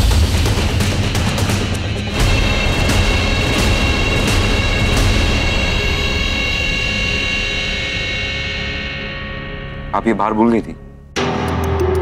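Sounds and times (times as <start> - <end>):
droning synth chord: 2.1 - 12.0.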